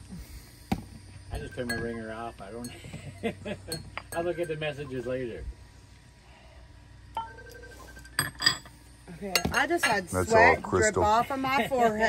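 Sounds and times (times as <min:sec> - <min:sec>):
crystal glass clink: 0:01.3 - 0:02.8, 0:03.7 - 0:05.0, 0:07.2 - 0:08.7.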